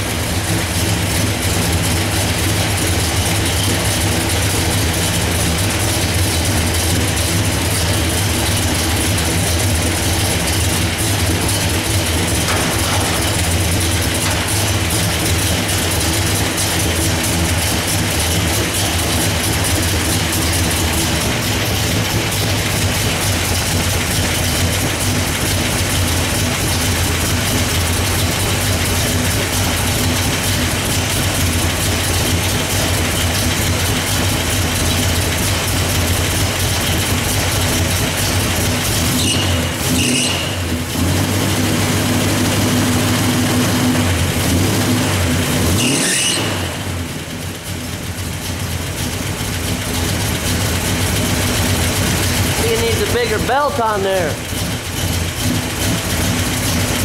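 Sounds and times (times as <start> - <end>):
car engine idling: 0.0 - 57.0
mechanical engine noise: 0.0 - 57.0.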